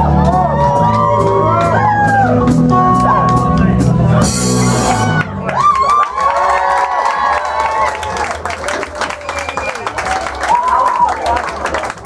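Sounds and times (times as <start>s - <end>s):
crowd cheering and whooping: 0.0s - 3.6s, 4.7s - 12.0s.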